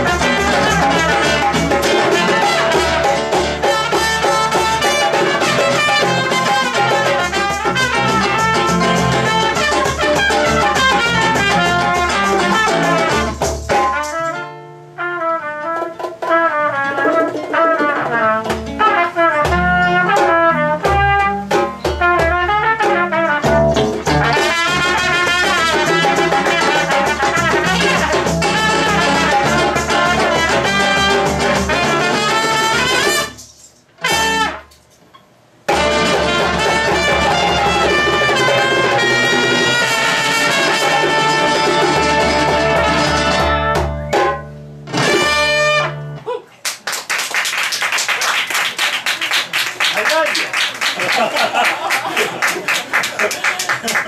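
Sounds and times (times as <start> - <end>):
hand drums: 0.0 - 14.4, 15.6 - 33.6, 35.7 - 45.4
trumpet: 0.0 - 35.0, 35.7 - 46.2
acoustic guitar: 0.0 - 46.8.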